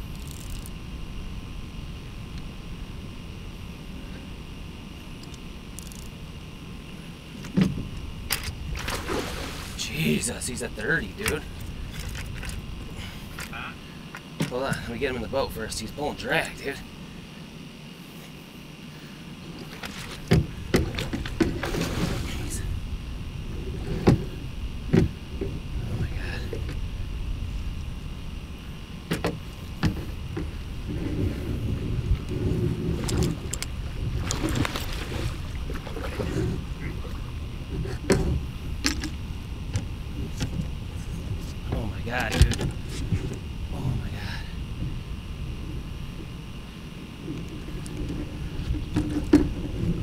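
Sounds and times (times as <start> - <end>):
low rumbling handling noise: 0.0 - 17.2, 19.4 - 50.0
knocks and thumps in boat: 7.4 - 9.4, 19.5 - 22.5, 23.5 - 26.8, 29.1 - 43.4, 47.2 - 50.0.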